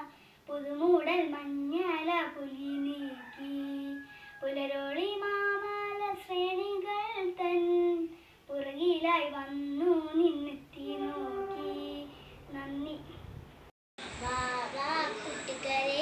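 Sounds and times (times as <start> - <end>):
girl singing unaccompanied: 0.0 - 13.4, 14.1 - 16.0.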